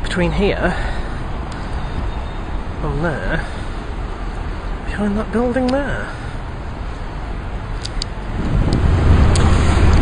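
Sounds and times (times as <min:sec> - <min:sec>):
low outdoor rumble: 0:06.0 - 0:10.0
faint clicks: 0:07.8 - 0:10.0.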